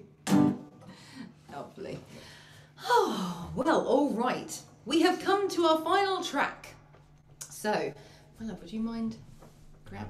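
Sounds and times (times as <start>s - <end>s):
person gasping: 0.8s - 1.4s.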